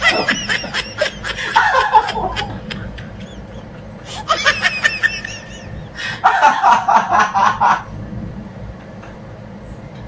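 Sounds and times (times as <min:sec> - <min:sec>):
person giggling: 0:00.0 - 0:07.8.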